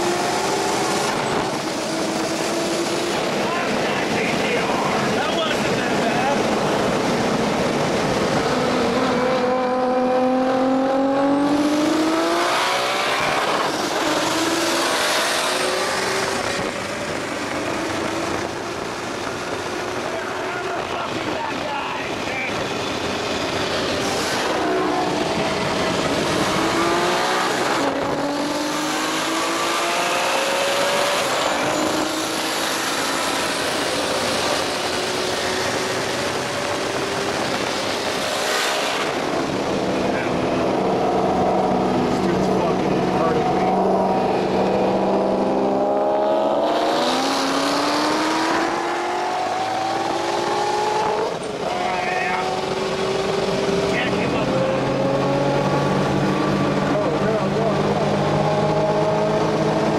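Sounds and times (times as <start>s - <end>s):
car engine accelerating hard: 0.0s - 59.9s.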